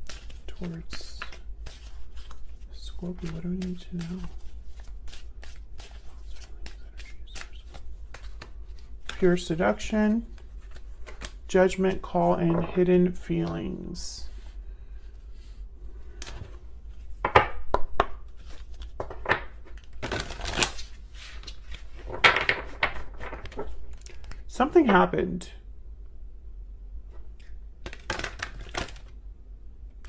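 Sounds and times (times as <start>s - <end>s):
cards being shuffled: 0.0s - 14.5s, 16.1s - 24.6s, 27.1s - 29.2s
cards slapping on a table: 27.8s - 29.1s.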